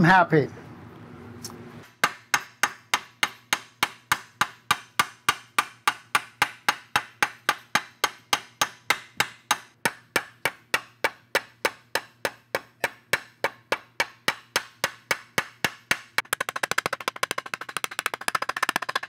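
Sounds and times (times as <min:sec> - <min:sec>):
hammer tapping metal strip: 0:02.0 - 0:19.0.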